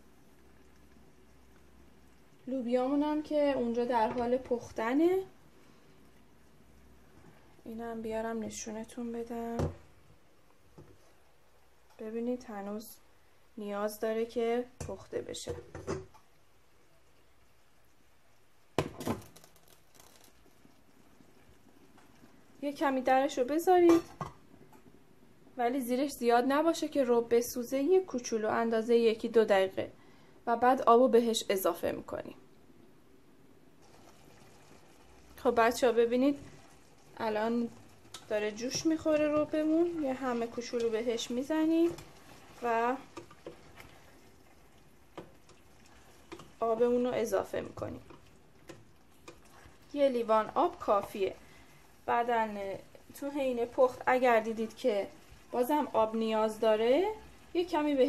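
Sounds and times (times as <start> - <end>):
faint steady hiss: 0.0 - 58.0.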